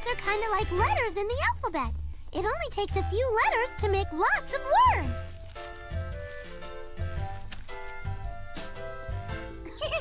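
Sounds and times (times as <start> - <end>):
light cartoon background music: 0.0 - 10.0.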